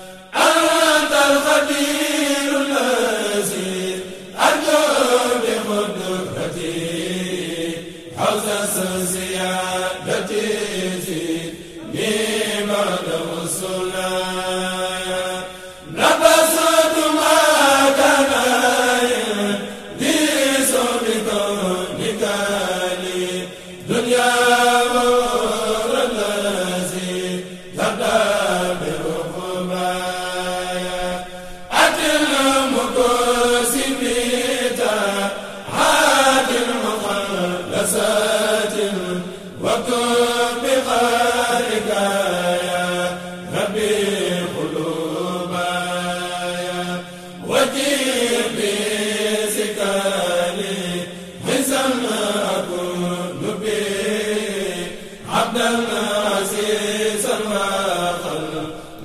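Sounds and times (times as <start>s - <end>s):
voices chanting: 0.0s - 59.0s.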